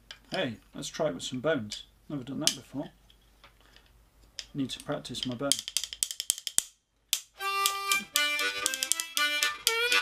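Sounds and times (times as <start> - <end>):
rhythm bones clacking: 5.2 - 10.0
harmonica melody: 7.4 - 10.0.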